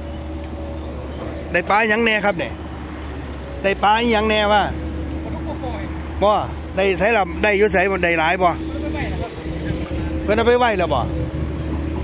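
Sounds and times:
water pump engine humming: 0.0 - 12.0.

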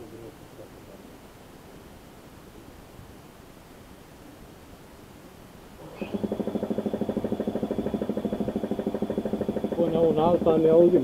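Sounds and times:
air compressor running: 5.8 - 11.0.

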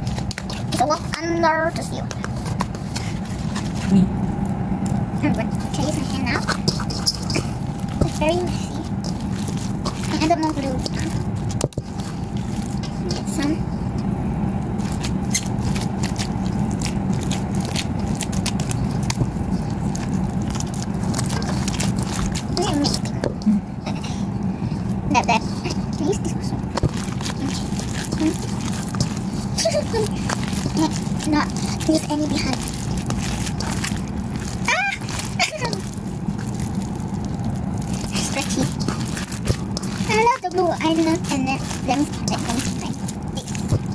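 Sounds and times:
low even hum: 0.0 - 43.9
slime squelching and crackling: 0.0 - 43.9
child exclaiming: 34.6 - 35.9.

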